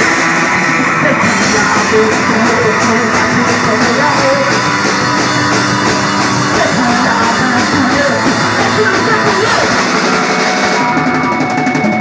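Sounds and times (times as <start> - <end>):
rock band playing: 0.0 - 12.0.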